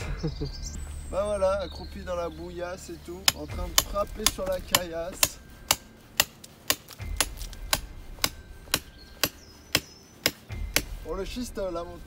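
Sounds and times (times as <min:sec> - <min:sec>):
hammer striking stone slabs: 0:03.2 - 0:11.0.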